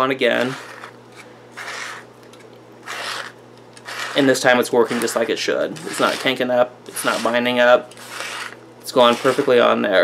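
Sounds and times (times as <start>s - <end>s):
film scraping on reel: 0.3s - 9.7s.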